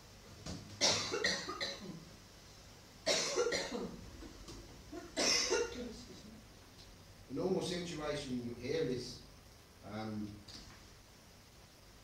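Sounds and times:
person coughing: 0.8s - 2.0s, 3.1s - 4.0s, 5.1s - 5.9s.

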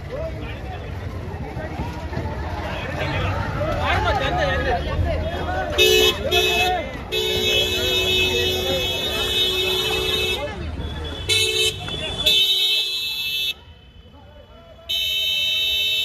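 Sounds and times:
crowd chatter: 0.0s - 16.0s
car horn honking: 5.8s - 13.6s, 14.8s - 16.0s.

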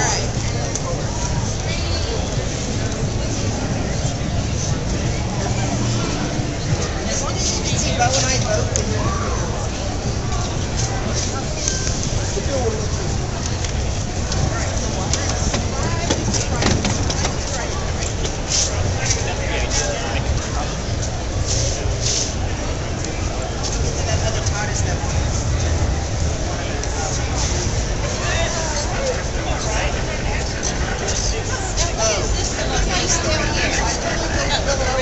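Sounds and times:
crowd babble: 0.0s - 35.0s
ride-on vehicle rumbling: 0.0s - 35.0s
prop rolling on hard floor: 15.1s - 17.6s.

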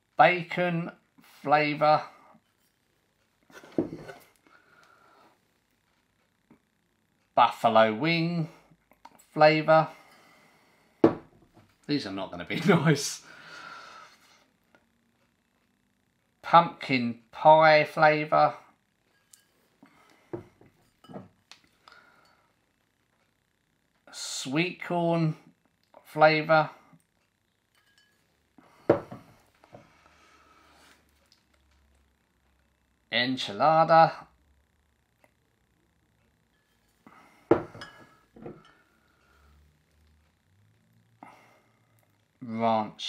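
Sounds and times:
glass bottles knocking and clinking: 37.5s - 38.7s.

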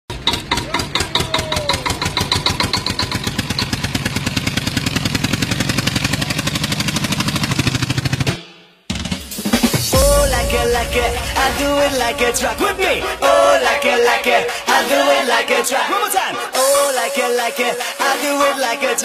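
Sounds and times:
tractor engine chugging: 0.1s - 8.3s
dance song beat: 8.9s - 19.0s.

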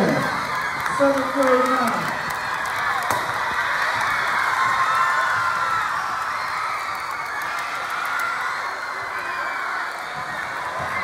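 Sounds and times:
crowd cheering and clapping: 0.0s - 11.0s.

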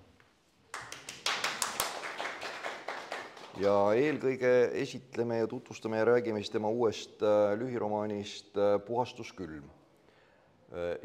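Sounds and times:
audience applauding: 0.7s - 4.2s.

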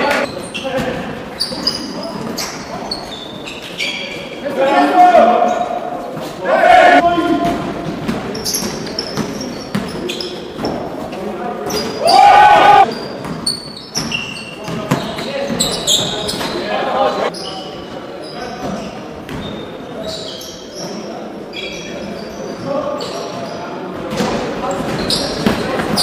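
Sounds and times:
sneakers squeaking: 0.0s - 4.5s, 8.0s - 26.0s
players calling out: 12.0s - 12.9s.

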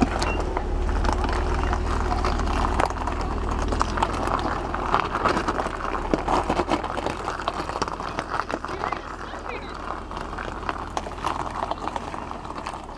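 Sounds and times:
low engine rumble: 0.0s - 12.9s
tyres crunching over gravel: 0.0s - 12.9s.

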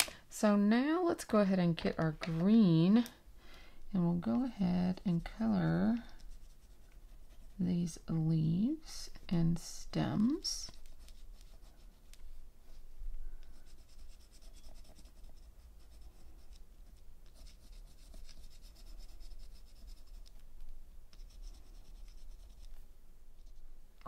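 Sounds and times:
pencil scratching on paper: 4.5s - 8.1s, 10.6s - 12.1s, 13.6s - 20.3s, 21.1s - 22.8s.

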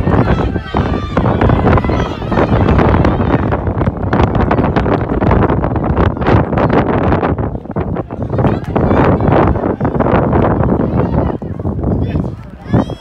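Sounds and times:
faint voices: 0.0s - 13.0s
wind rumbling on microphone: 0.0s - 13.0s.

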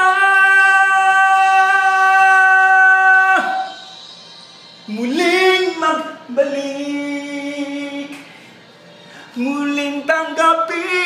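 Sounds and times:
man singing a ballad: 0.0s - 3.9s, 4.9s - 11.0s.

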